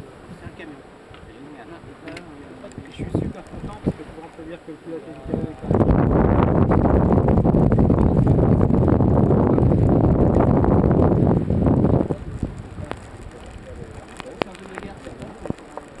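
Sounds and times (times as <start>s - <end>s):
strong wind buffeting microphone: 0.0s - 4.3s, 5.1s - 16.0s
water wash: 0.0s - 16.0s.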